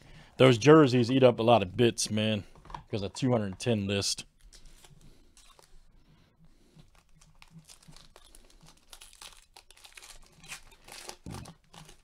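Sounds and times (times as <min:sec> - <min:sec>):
foil wrapper crinkling: 0:04.4 - 0:05.7, 0:06.8 - 0:12.0.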